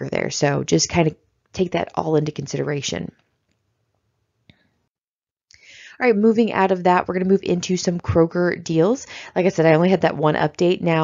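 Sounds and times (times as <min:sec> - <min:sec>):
soft in-breath: 0:05.5 - 0:06.0, 0:09.1 - 0:09.4.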